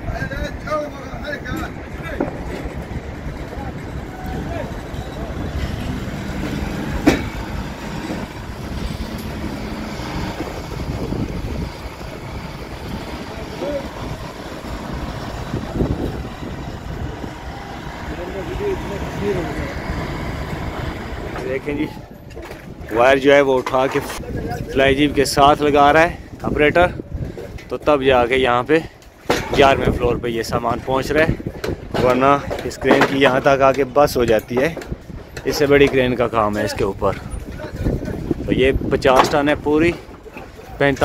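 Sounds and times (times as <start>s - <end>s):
faint voices: 0.0s - 6.9s
crane diesel engine running: 1.7s - 22.2s.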